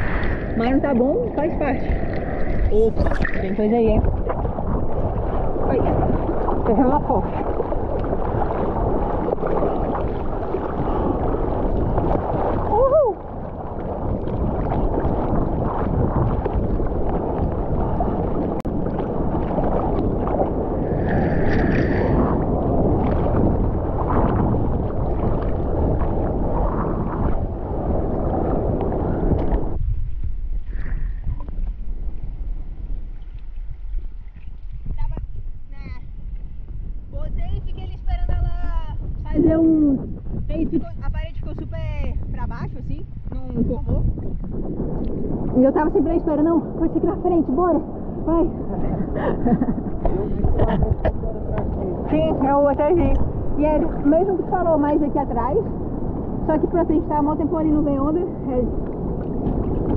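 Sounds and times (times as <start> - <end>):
water sloshing and gurgling: 0.0 - 59.9
wind on microphone: 0.0 - 59.9.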